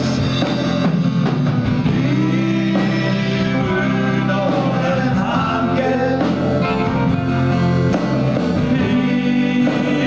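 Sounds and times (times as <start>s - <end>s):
guitar: 0.0s - 10.0s
live pop band playing: 0.0s - 10.0s
people singing together: 1.9s - 10.0s.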